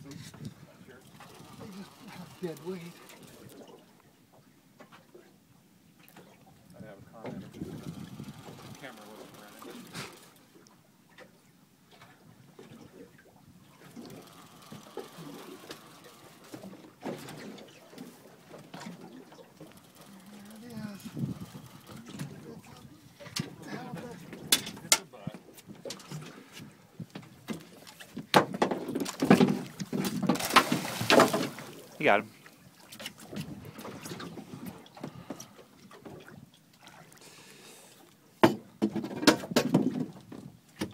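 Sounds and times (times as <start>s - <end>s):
knocks and clicks from rod handling: 24.3s - 26.4s, 27.0s - 31.6s, 38.4s - 40.9s.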